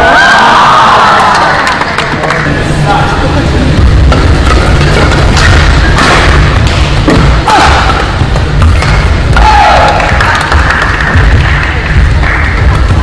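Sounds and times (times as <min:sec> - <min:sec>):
low thumping: 0:03.2 - 0:13.0
rackets hitting shuttlecock: 0:04.1 - 0:10.0.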